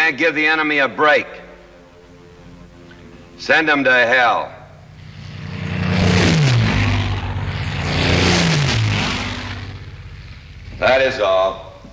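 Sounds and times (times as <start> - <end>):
propeller aircraft engines roaring: 0.0 - 11.9.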